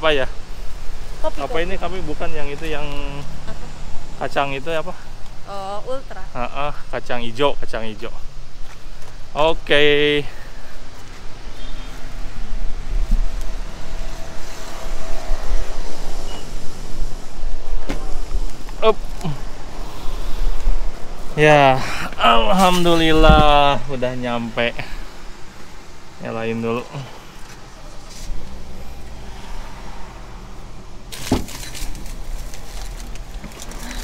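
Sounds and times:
street noise: 0.0 - 34.0
wind buffeting microphone: 10.8 - 24.0.

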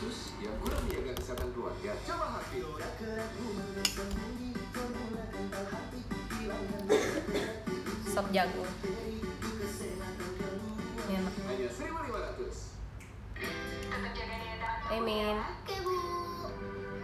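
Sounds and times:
background music: 0.0 - 12.5, 13.4 - 17.0.

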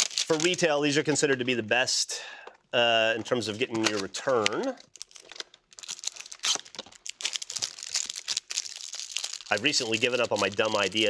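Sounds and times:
plastic wrapper crinkling: 0.0 - 1.3, 3.2 - 11.0.

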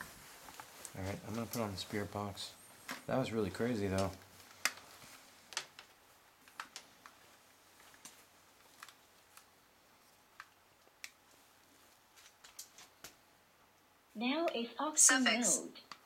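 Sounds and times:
faint room hiss: 0.0 - 16.0.

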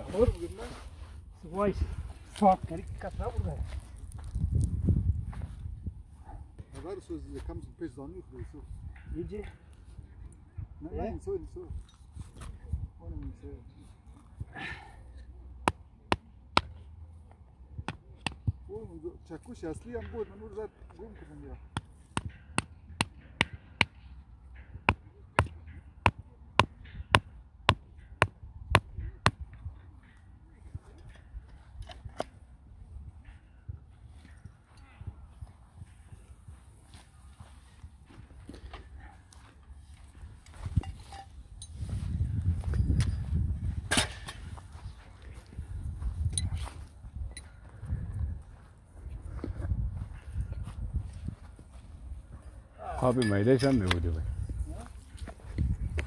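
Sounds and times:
hammer striking metal stake: 21.3 - 29.5, 43.9 - 44.6.

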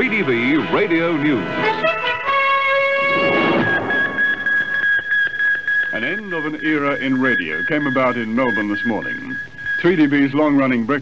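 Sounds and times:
steady high-pitched tone: 0.0 - 11.0.

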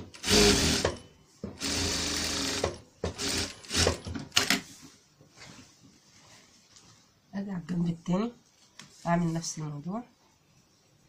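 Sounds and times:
industrial sewing machine stitching: 0.0 - 1.0, 1.6 - 4.5.

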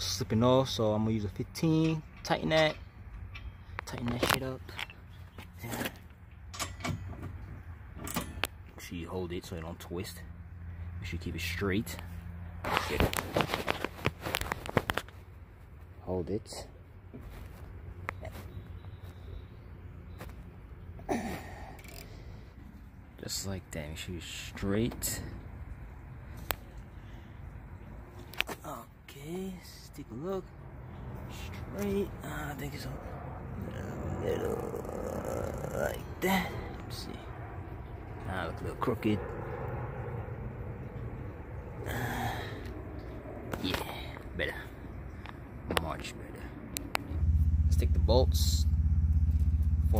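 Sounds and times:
steady low hum: 29.0 - 49.9
low background rumble: 30.5 - 49.9.

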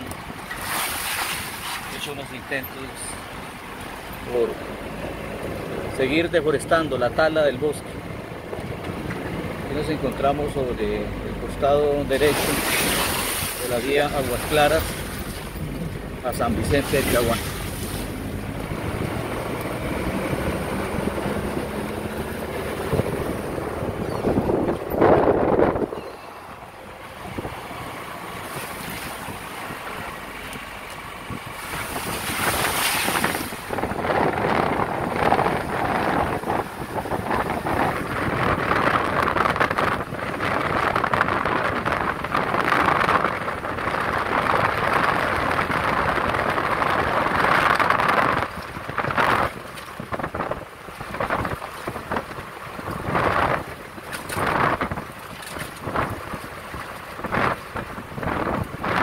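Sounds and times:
vehicle road noise: 0.0 - 59.0
wind buffeting microphone: 3.2 - 59.0.

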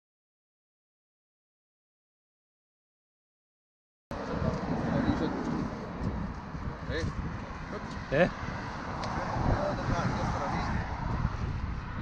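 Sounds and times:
road traffic: 4.1 - 12.0
wind on microphone: 4.1 - 12.0.

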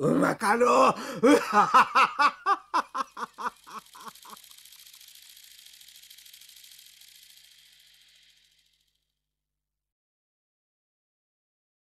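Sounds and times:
man laughing: 0.0 - 4.4
paper pinwheel whirring: 1.5 - 9.2.

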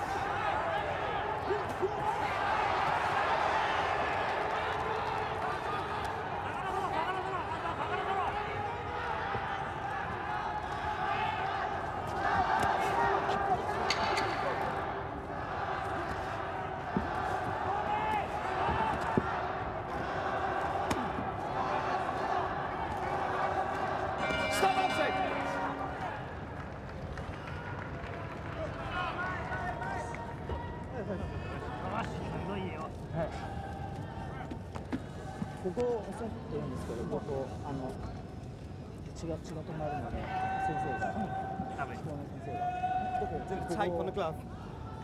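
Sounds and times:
crowd shouting and cheering: 0.0 - 35.9
ring bell: 24.2 - 26.6.

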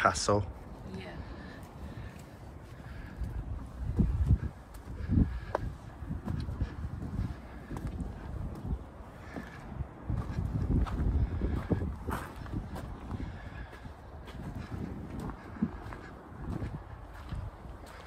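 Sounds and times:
wind buffeting microphone: 0.6 - 18.0
footsteps on gravel: 1.5 - 18.0.

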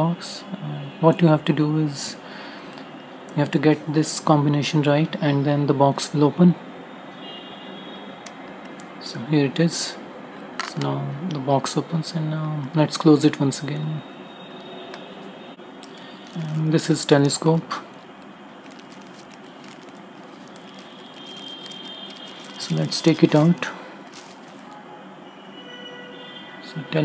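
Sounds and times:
plastic bag crinkling: 15.8 - 24.9.

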